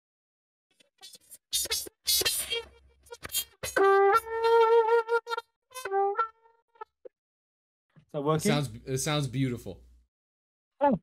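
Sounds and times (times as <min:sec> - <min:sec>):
trumpet playing over video call: 0:03.7 - 0:07.0.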